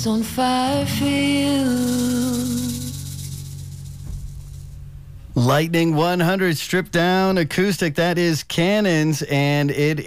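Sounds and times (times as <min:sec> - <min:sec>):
acoustic guitar chord ringing: 0:00.0 - 0:07.5
hand shaker rattling: 0:00.9 - 0:04.8.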